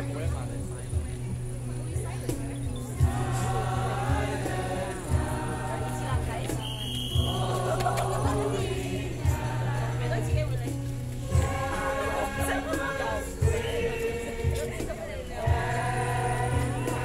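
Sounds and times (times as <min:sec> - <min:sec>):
low accompaniment with soft beat: 0:00.0 - 0:17.0
choir singing a carol: 0:02.8 - 0:17.0.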